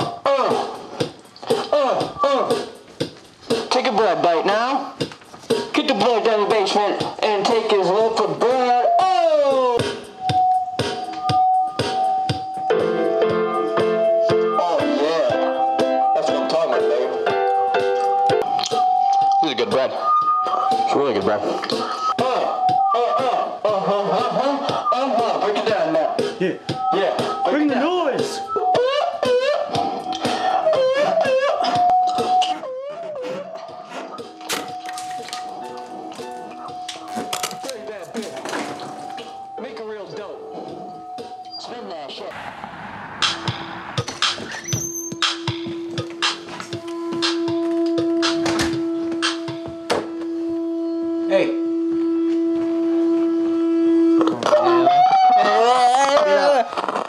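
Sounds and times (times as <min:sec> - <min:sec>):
man vocalising: 0:00.0 - 0:00.9, 0:01.5 - 0:02.8
electronic keyboard music: 0:00.0 - 0:42.2, 0:44.0 - 0:55.9.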